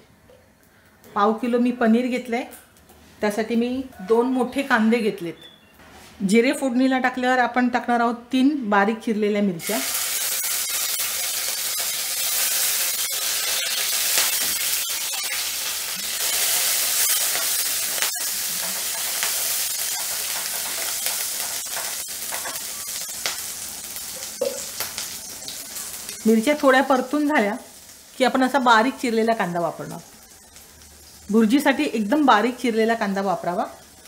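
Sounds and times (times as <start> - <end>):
chillies sizzling in hot oil: 9.6 - 34.0.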